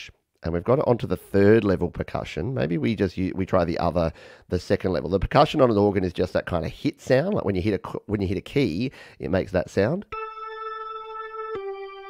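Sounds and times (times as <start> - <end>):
organ holding notes: 10.1 - 12.0.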